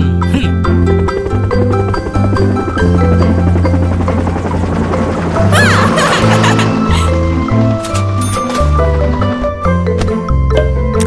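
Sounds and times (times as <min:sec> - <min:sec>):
cartoon helicopter rotor chop: 0:00.8 - 0:07.5.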